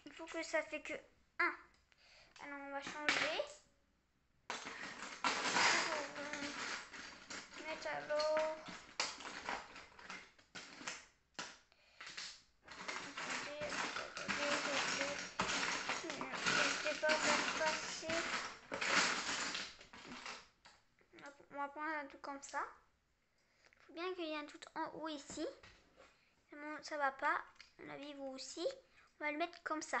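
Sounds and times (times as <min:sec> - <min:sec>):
child speaking: 0:00.0 - 0:01.7, 0:02.4 - 0:03.6, 0:05.5 - 0:06.7, 0:07.6 - 0:08.7, 0:13.2 - 0:18.4, 0:21.1 - 0:22.8, 0:23.9 - 0:25.6, 0:26.5 - 0:30.0
plastic bricks clattering: 0:04.5 - 0:20.8.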